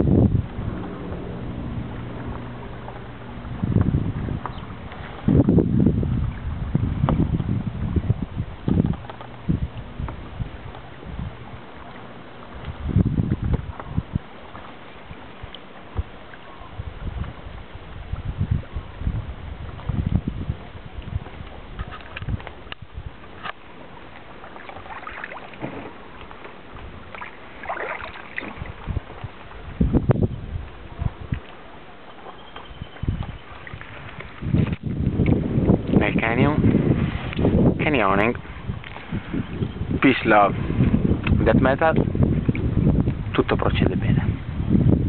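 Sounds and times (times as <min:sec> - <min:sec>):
paddle splashing water: 0:00.0 - 0:44.9
wind buffeting microphone: 0:00.0 - 0:45.0.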